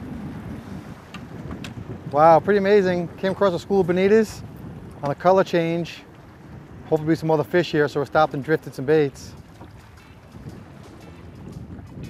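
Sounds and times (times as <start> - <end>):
choppy water washing: 0.0 - 12.0
wind rumbling on microphone: 0.0 - 12.0.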